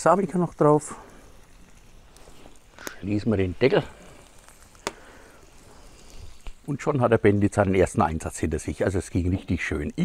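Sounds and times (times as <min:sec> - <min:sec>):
fire crackle: 0:00.0 - 0:10.0
fire hissing: 0:00.0 - 0:10.0.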